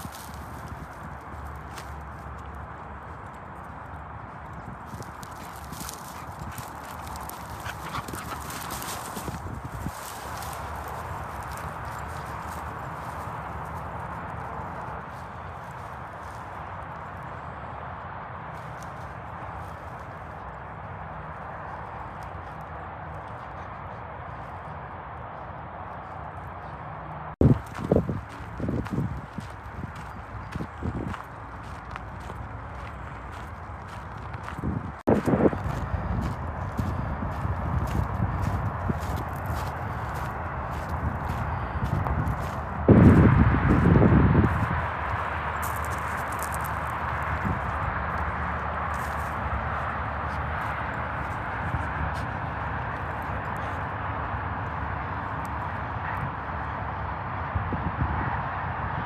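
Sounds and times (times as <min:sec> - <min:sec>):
footsteps on gravel: 0:00.0 - 0:17.6, 0:27.4 - 0:53.9
distant highway traffic hiss: 0:00.0 - 0:59.0
small clicks and scuffs: 0:45.0 - 0:55.7.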